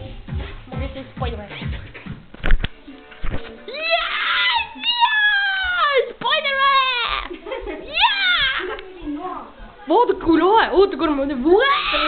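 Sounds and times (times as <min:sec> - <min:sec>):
child wailing howl: 0:11.6 - 0:12.0.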